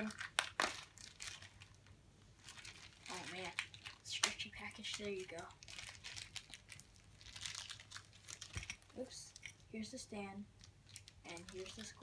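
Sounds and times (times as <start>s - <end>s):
plastic wrapper crinkling: 0.0s - 9.6s, 10.6s - 12.0s.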